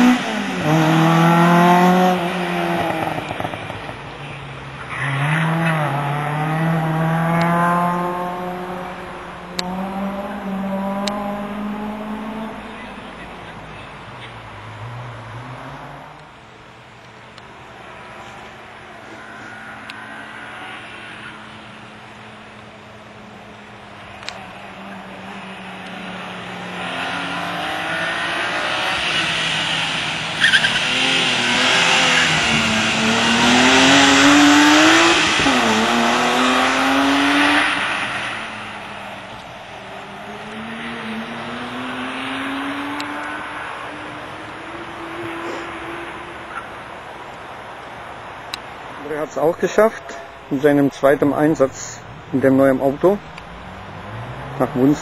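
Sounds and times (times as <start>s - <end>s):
race car engine revving: 0.0s - 16.3s, 17.4s - 47.6s.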